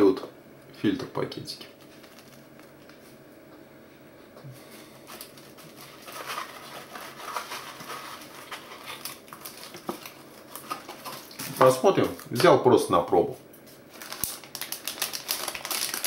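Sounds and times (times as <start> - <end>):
cellophane crinkling: 1.8 - 3.2, 5.0 - 12.5, 13.7 - 16.0
paper and cardboard rustling: 1.8 - 3.2, 5.0 - 12.3, 13.9 - 16.0.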